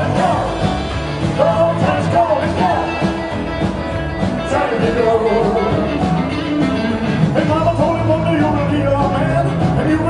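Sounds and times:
rock and roll band playing: 0.0 - 10.0.

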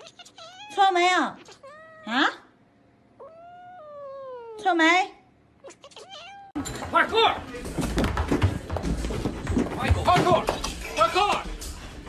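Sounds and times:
cat meowing: 0.0 - 2.4, 3.2 - 4.6, 5.6 - 6.6.

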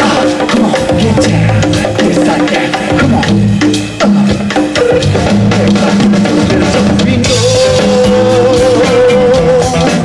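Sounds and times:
drum kit and bass guitar groove: 0.0 - 10.0
live funk band playing: 0.0 - 10.0.

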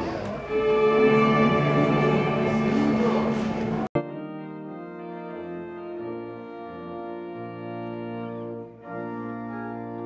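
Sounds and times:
loud music with held notes: 0.0 - 10.0
organ playing sustained chords: 0.0 - 10.0.

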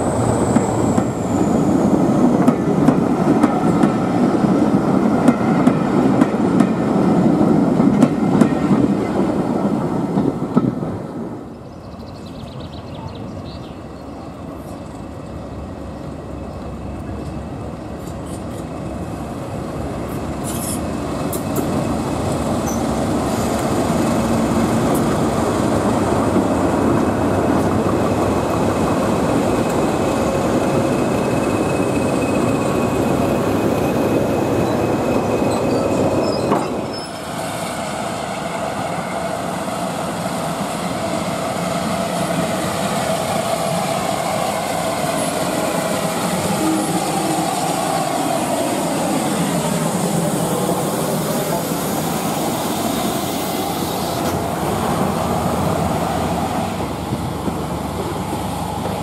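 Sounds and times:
train wheel squeal: 0.0 - 2.4, 20.4 - 21.6, 22.6 - 23.6, 29.7 - 39.6, 41.8 - 54.4
diesel locomotive engine running: 0.0 - 10.6, 12.5 - 59.0
train coaches rolling past: 0.0 - 59.0.

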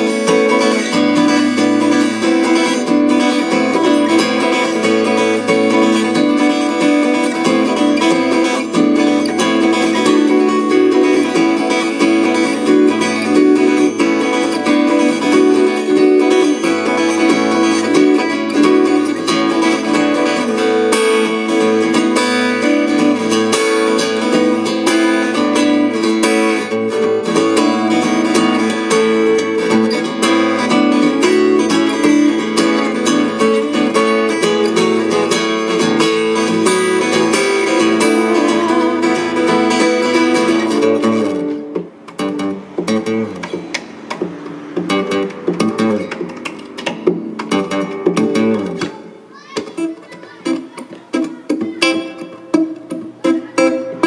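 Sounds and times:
acoustic guitar: 0.0 - 54.0.

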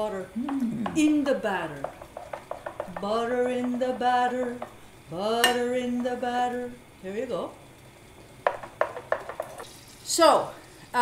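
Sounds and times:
cookware clinking against bowl: 5.4 - 5.7.

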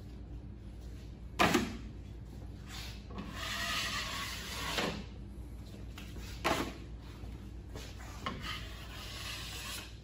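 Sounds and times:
knife scraping plasterboard wall: 2.8 - 5.1, 8.1 - 10.0.

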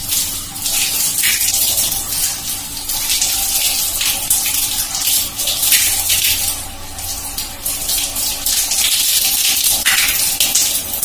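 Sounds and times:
tap water splashing on hair: 0.0 - 11.0.

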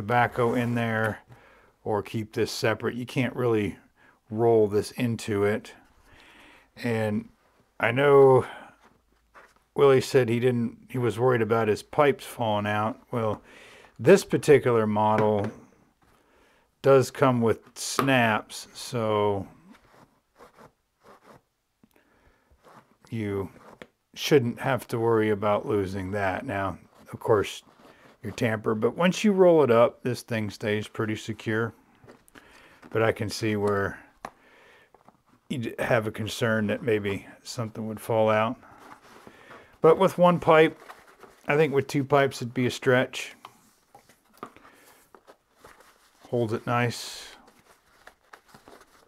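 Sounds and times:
canvas pouch rustling: 19.6 - 21.5, 38.6 - 41.7, 43.8 - 46.6, 47.4 - 49.0.

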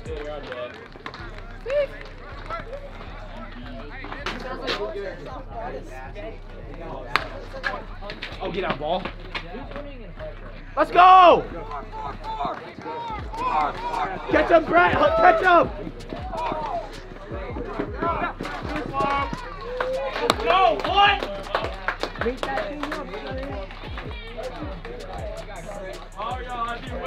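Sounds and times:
crowd shouting and cheering: 0.0 - 27.0
loud yell: 10.8 - 16.9.

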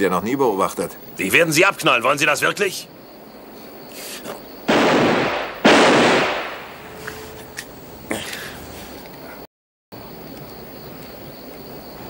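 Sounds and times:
revolver shots echoing: 4.7 - 7.0.

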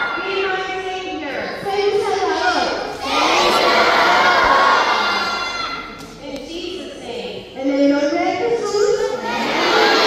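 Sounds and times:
children shouting and cheering: 0.0 - 0.8, 1.4 - 6.0, 9.1 - 10.0.

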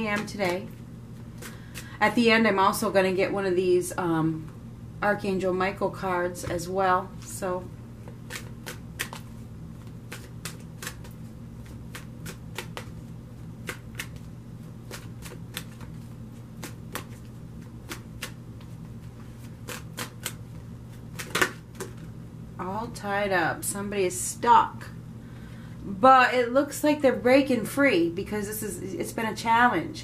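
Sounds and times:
steady low hum: 0.0 - 30.0
cards shuffled by hand: 8.0 - 22.1.

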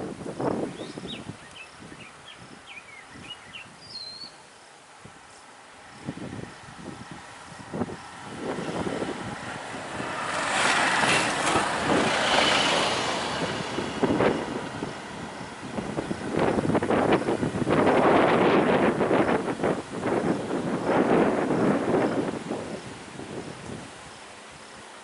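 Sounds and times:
wind buffeting microphone: 0.0 - 4.3, 4.9 - 25.0
motor vehicles on road: 0.0 - 25.0.

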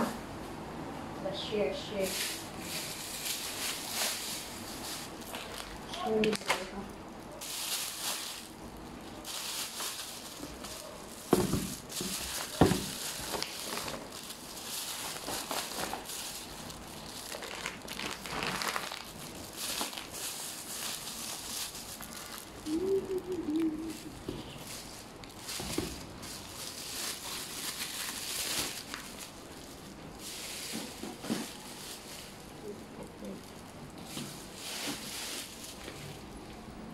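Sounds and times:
plastic bag crinkling: 1.9 - 36.7.

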